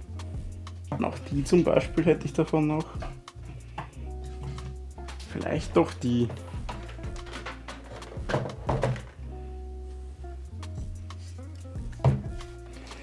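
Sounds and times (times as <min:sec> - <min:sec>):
background music with low beat: 0:00.0 - 0:13.0
wood knocking on glass tank: 0:12.0 - 0:12.3.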